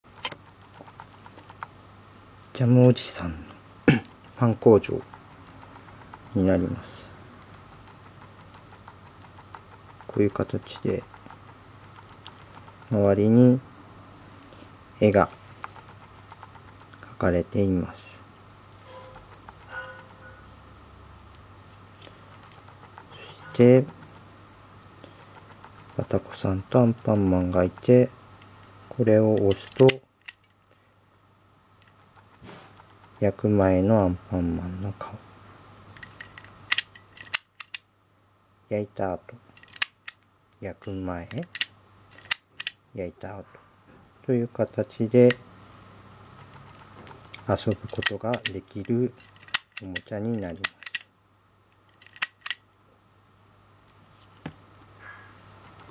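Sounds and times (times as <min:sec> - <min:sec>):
low steady hum: 0:00.0 - 0:55.9
plastic toy handling: 0:35.9 - 0:37.8, 0:39.5 - 0:40.3, 0:41.3 - 0:42.8, 0:46.4 - 0:51.0, 0:51.8 - 0:52.6.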